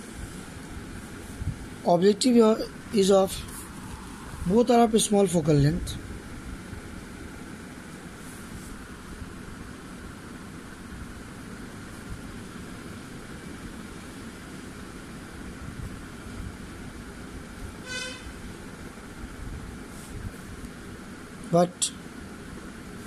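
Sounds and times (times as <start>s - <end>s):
road traffic: 0.0s - 23.0s
vehicle horn toot: 17.8s - 18.4s.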